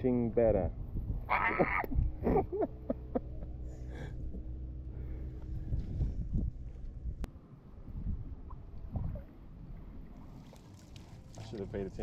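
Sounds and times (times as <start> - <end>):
low steady hum: 0.0 - 12.0
person laughing: 1.3 - 4.0.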